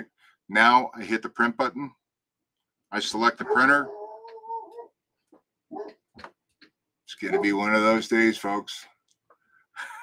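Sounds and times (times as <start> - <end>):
dog barking faintly: 3.4 - 4.9, 5.7 - 6.1, 7.2 - 7.7.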